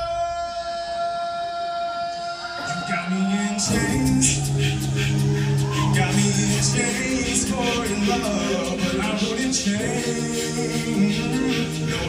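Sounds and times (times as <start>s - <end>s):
lower voices singing: 2.2s - 12.0s.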